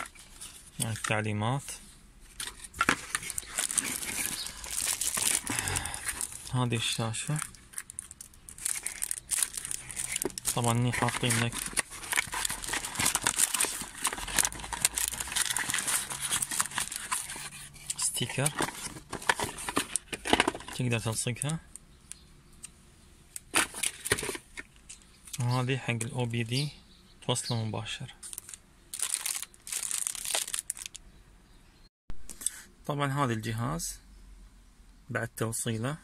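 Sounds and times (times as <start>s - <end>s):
cardboard and plastic rustling: 0.0s - 1.3s, 2.2s - 21.6s, 23.4s - 25.0s, 28.2s - 31.0s
plastic packaging crinkling: 2.4s - 21.4s, 23.4s - 24.5s, 28.2s - 31.0s.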